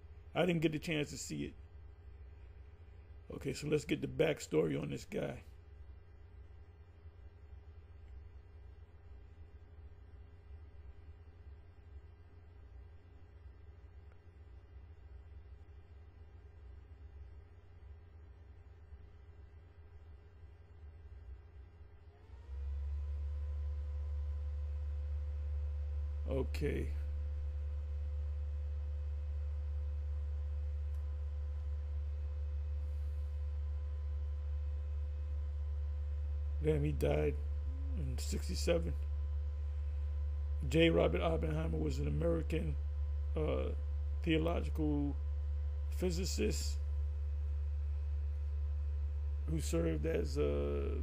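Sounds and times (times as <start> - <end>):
low hum: 0.0 - 51.0.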